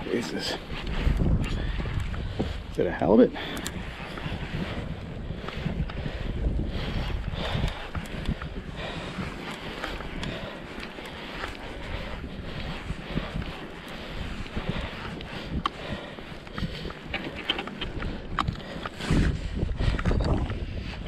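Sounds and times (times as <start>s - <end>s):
wind buffeting microphone: 0.0s - 21.0s
faint clicks: 3.5s - 4.2s.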